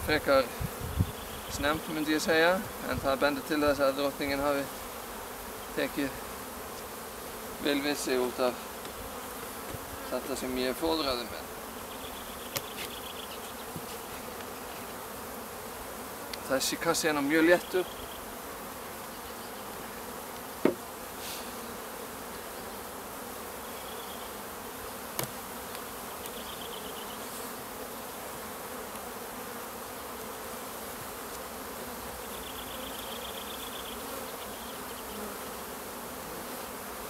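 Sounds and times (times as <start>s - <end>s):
bees buzzing: 0.0s - 37.0s.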